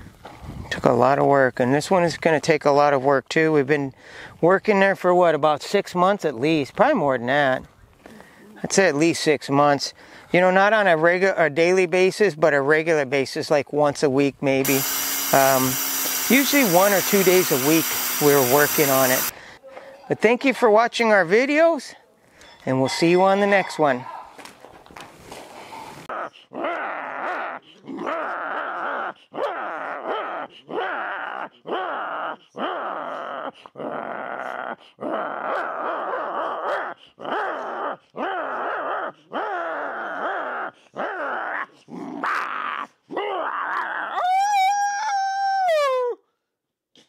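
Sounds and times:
dog howl: 0:26.1 - 0:46.2.

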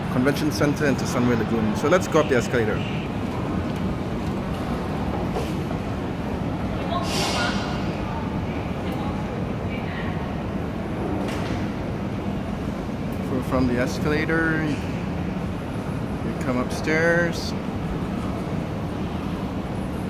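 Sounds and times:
escalator rumble and hum: 0:00.0 - 0:20.0.

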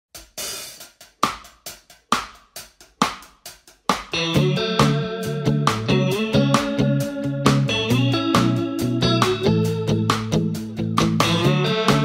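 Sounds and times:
hi-hat strokes: 0:00.2 - 0:12.0
snare drum hits: 0:00.4 - 0:02.4, 0:03.0 - 0:04.2.

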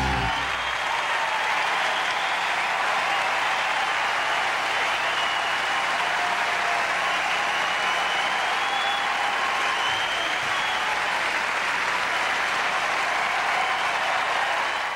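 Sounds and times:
audience applauding: 0:00.0 - 0:14.9.

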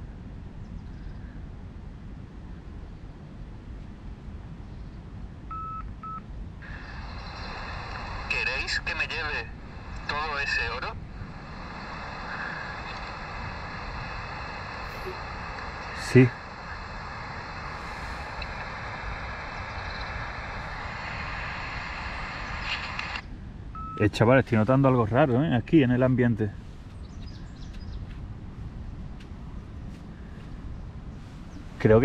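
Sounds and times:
wind rumbling on microphone: 0:00.0 - 0:32.0
voice recorder button beeps: 0:05.5 - 0:06.2, 0:23.8 - 0:24.0.

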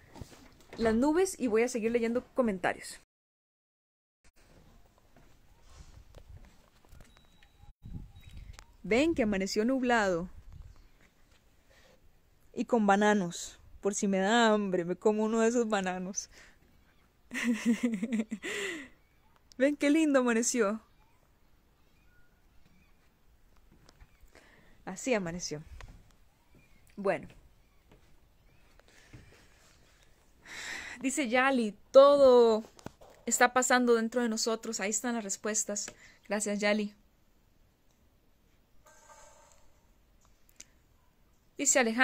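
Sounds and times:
faint high chirps: 0:06.8 - 0:08.9, 0:18.8 - 0:19.6, 0:20.8 - 0:23.1.

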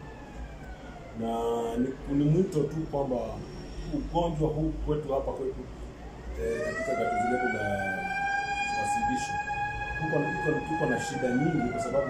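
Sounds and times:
siren rising tone: 0:06.2 - 0:12.0.

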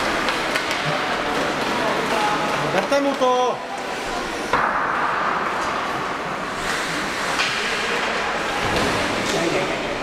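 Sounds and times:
ice hockey game din: 0:00.0 - 0:10.0.

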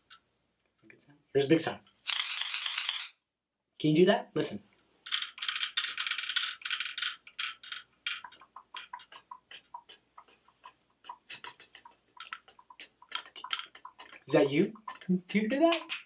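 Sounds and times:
wooden toy clicking: 0:05.0 - 0:16.0.

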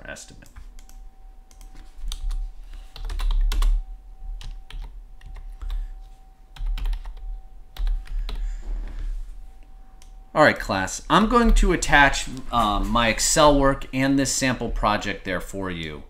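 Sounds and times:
keyboard typing: 0:00.3 - 0:08.6.

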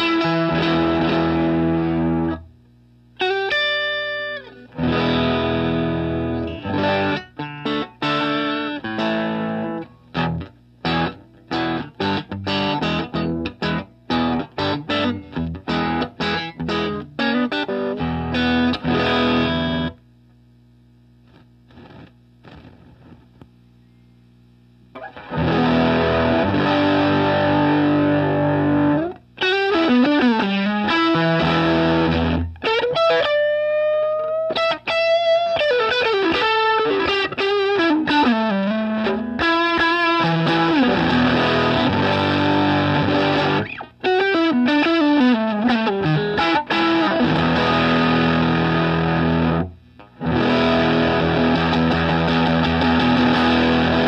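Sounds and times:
distorted electric guitar: 0:00.0 - 0:23.6, 0:24.9 - 0:54.0.

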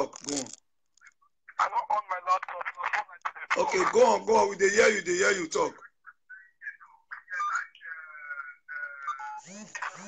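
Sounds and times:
man talking over video call: 0:00.0 - 0:09.3.

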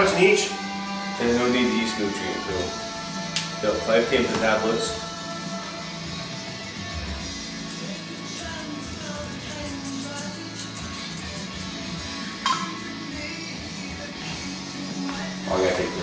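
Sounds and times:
rock music with guitar: 0:00.0 - 0:16.0.

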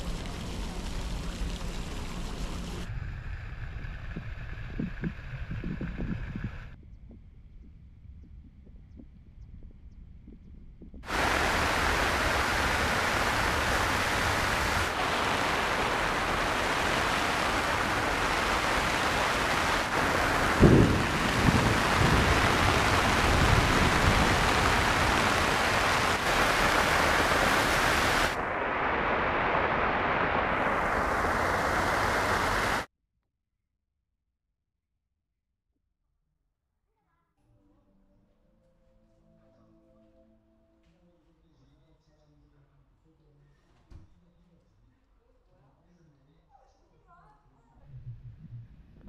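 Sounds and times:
heavy rain hissing: 0:00.0 - 0:02.9, 0:11.0 - 0:32.9.

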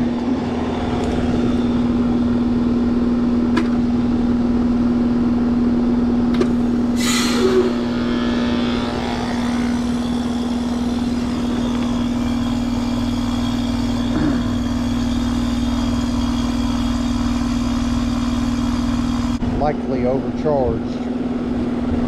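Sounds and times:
compressor humming: 0:00.0 - 0:22.0
fan rushing air: 0:00.0 - 0:22.0.

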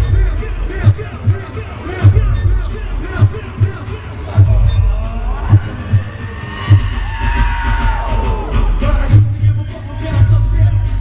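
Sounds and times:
heavy bass thumps: 0:00.0 - 0:11.0
hip-hop music over loudspeakers: 0:00.0 - 0:11.0.

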